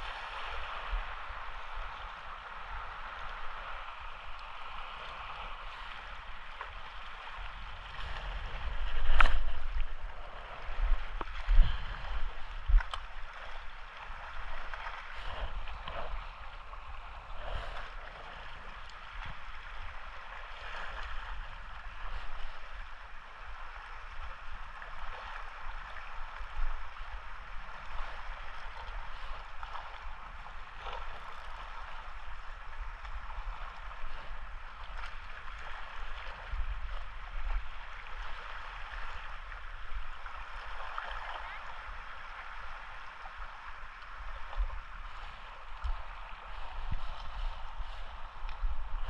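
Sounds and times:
waves lapping on rocks: 0.0s - 49.0s
wind rumbling on microphone: 0.0s - 49.0s.

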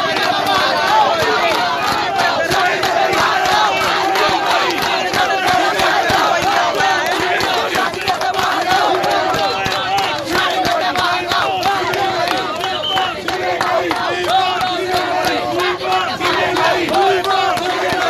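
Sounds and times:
crowd shouting slogans: 0.0s - 18.0s.

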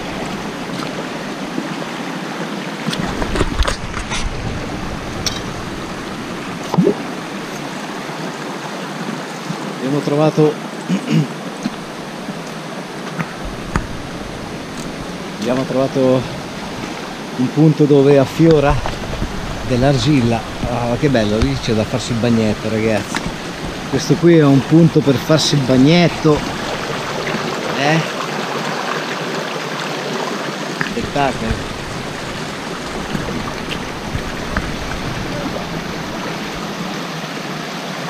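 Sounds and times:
stream running over rocks: 0.0s - 38.0s.

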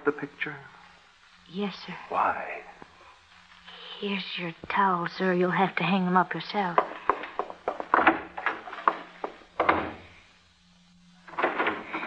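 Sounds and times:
wooden knocks and clicks: 6.8s - 10.0s.

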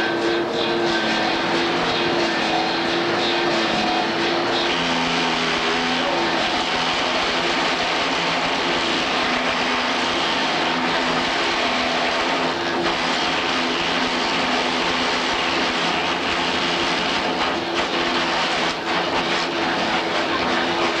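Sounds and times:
lathe machine whirring: 0.0s - 21.0s.

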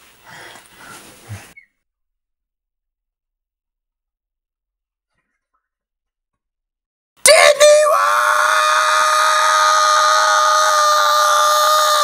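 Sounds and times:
man screaming: 7.2s - 12.0s.

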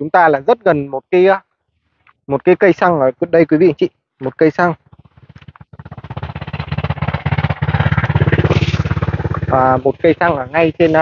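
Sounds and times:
vehicle passing on highway: 4.9s - 11.0s.

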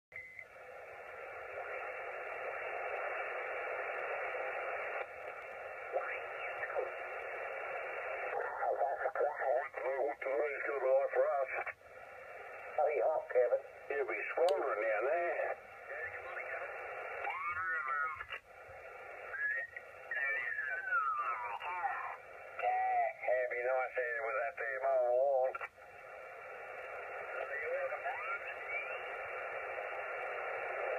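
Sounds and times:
radio band hiss: 0.5s - 30.9s.

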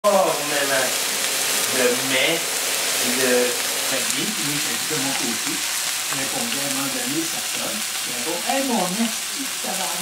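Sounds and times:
patties sizzling in frying pan: 0.1s - 10.0s.

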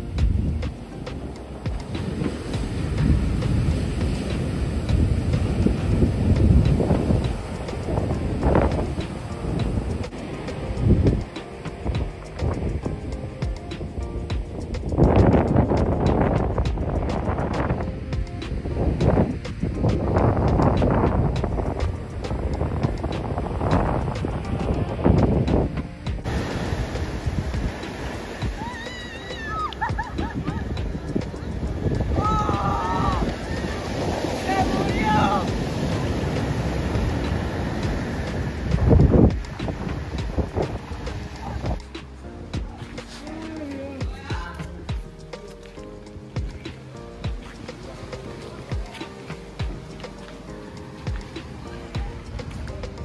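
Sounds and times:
wind buffeting microphone: 0.0s - 45.3s, 46.1s - 53.0s
ocean waves breaking on sand: 0.0s - 53.0s
surf washing up a beach: 0.0s - 53.0s
high wavering calls: 28.2s - 35.4s.

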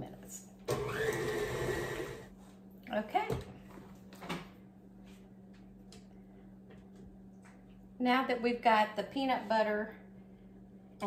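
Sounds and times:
stand mixer running: 0.7s - 2.3s.

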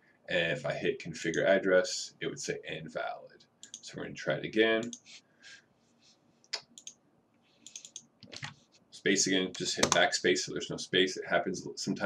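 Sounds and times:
computer keyboard typing: 7.7s - 8.5s, 9.8s - 10.0s.

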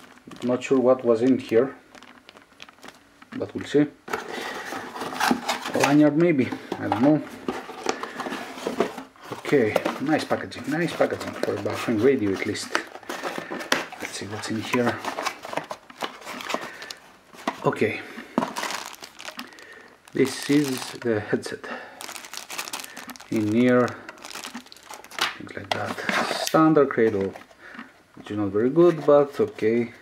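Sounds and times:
plastic bag crinkling: 0.0s - 27.8s.

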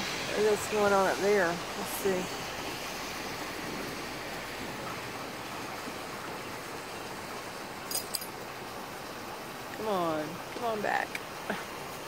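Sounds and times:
outdoor rushing noise: 0.0s - 6.9s.

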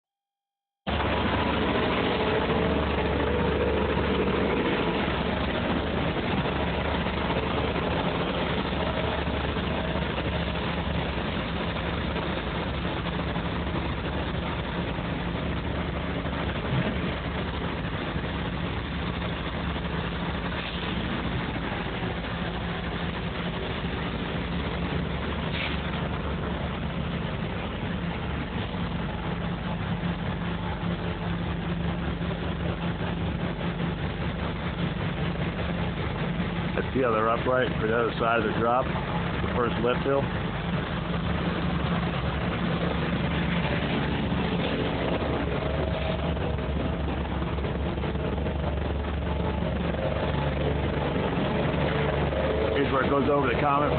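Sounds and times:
heavy machinery engine running: 0.9s - 53.9s.

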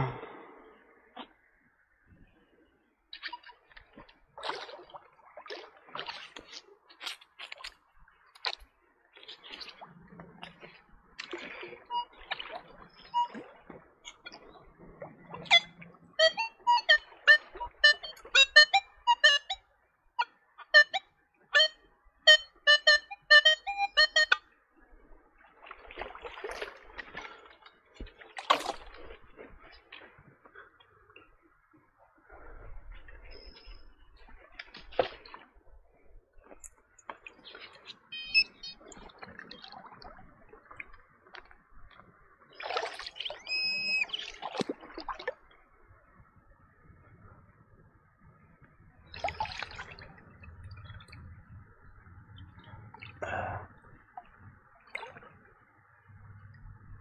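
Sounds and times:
water sloshing and splashing: 0.0s - 57.0s
metal detector beeping: 11.9s - 12.4s, 13.0s - 13.4s, 15.4s - 19.6s, 20.2s - 24.4s, 37.9s - 38.8s, 43.3s - 44.2s.

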